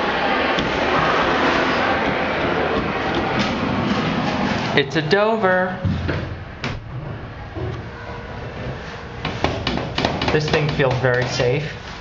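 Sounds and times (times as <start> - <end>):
elevator car low hum: 0.0 - 9.4
sharp knocks: 9.2 - 11.5.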